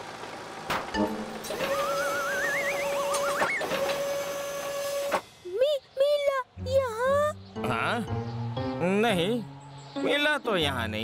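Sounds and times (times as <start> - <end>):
cartoon mechanical hum: 1.0 - 4.7
wobbling whistle rising in pitch: 1.6 - 3.7.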